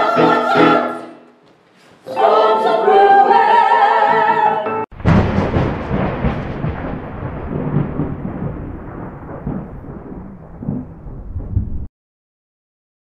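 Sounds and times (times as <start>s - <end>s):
loud crash with rolling rumble: 4.9s - 11.9s.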